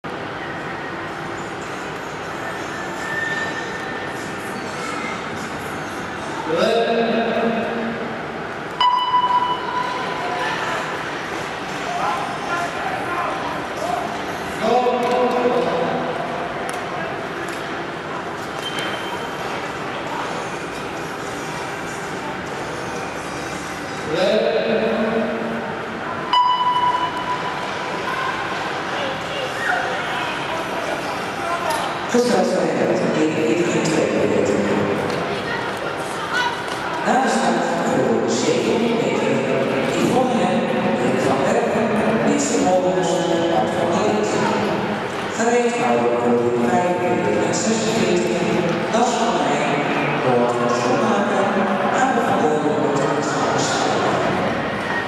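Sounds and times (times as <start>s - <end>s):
hall rumble and hiss: 0.0s - 8.8s, 9.7s - 26.4s, 27.1s - 55.0s
sharp signal tone: 8.8s - 10.0s, 26.3s - 27.6s.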